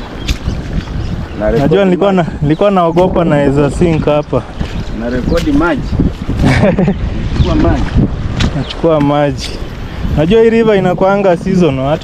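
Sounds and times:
rushing floodwater: 0:00.0 - 0:12.0
wind buffeting microphone: 0:00.0 - 0:12.0
man speaking: 0:01.4 - 0:05.9.

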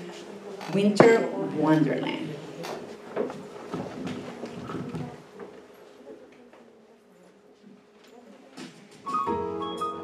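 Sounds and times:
faint knocks and shuffles: 0:02.6 - 0:09.1.

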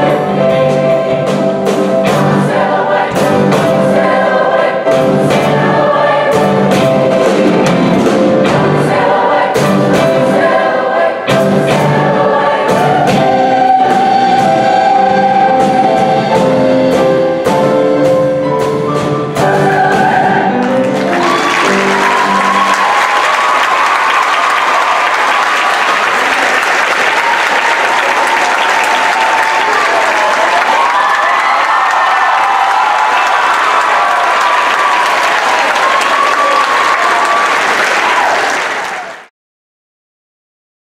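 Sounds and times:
choir and band final chord: 0:00.0 - 0:25.5
audience cheering: 0:19.8 - 0:39.3
audience applause: 0:20.6 - 0:39.3.

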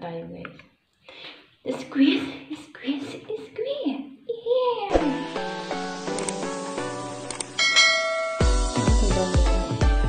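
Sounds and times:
bright bell chime: 0:07.6 - 0:09.4.

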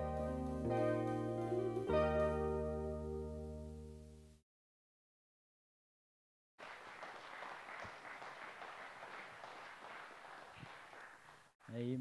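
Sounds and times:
faint applause: 0:06.6 - 0:11.9.

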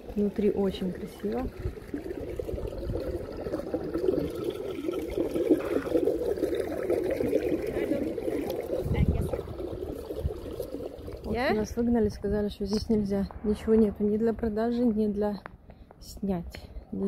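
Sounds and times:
water trickling into gutter: 0:00.0 - 0:13.3.

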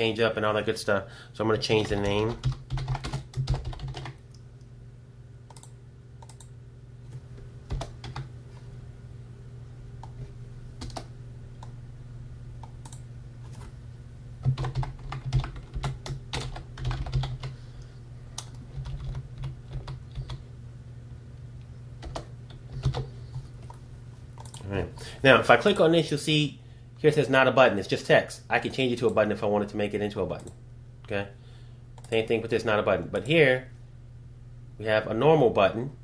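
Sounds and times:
steady low hum: 0:00.0 - 0:36.0
typing on computer keyboard: 0:01.8 - 0:04.2, 0:07.7 - 0:08.3, 0:10.8 - 0:11.1, 0:14.4 - 0:17.6, 0:18.4 - 0:20.4, 0:22.0 - 0:23.1.

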